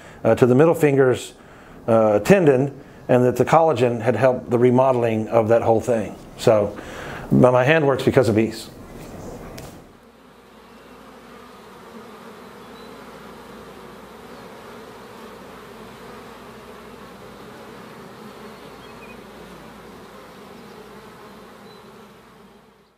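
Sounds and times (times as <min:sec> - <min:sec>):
bees buzzing: 0:00.0 - 0:22.9.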